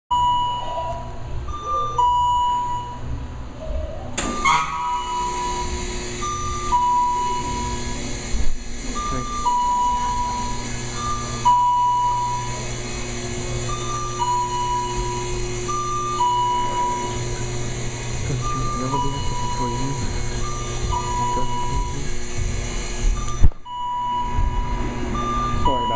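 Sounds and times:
two-note warning beep: 0:00.1 - 0:03.1, 0:04.2 - 0:08.1, 0:08.9 - 0:17.6, 0:18.2 - 0:22.4, 0:23.1 - 0:25.9
steady hum: 0:00.1 - 0:25.9
steady motor tone: 0:04.2 - 0:25.9.

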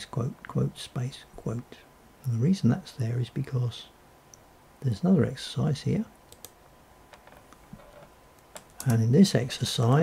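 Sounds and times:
faint keyboard keystrokes: 0:06.3 - 0:09.0.

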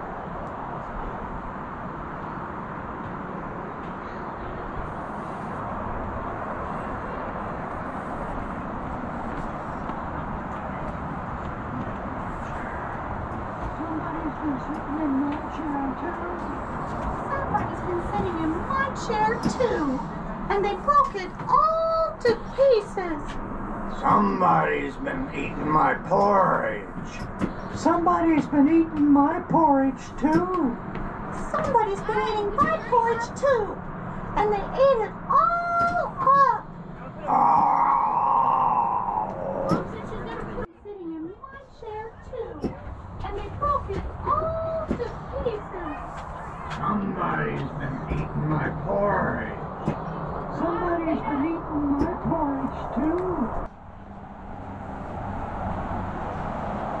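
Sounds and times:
rushing outdoor background noise: 0:00.0 - 0:57.0
long drawn-out bear cry: 0:37.2 - 0:39.8.

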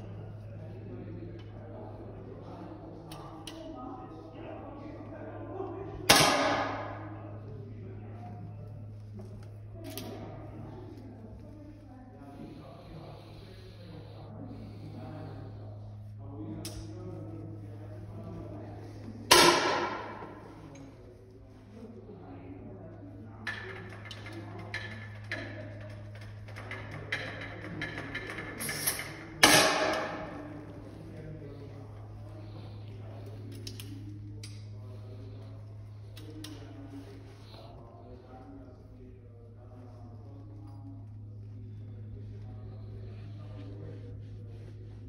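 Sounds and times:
steady low hum: 0:00.0 - 0:45.0.

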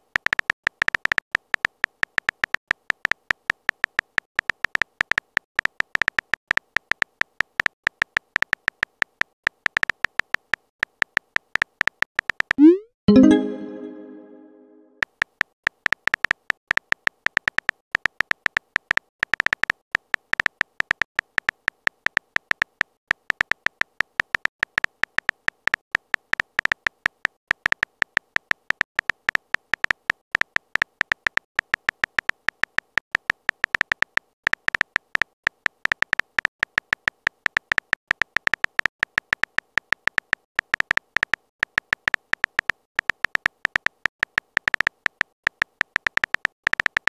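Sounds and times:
rapid keyboard typing clicks: 0:00.1 - 0:12.5, 0:26.1 - 0:47.0.

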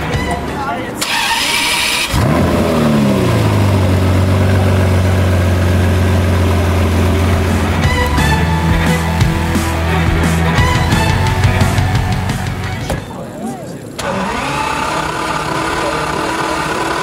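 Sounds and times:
car engine starting and idling: 0:00.0 - 0:17.0.

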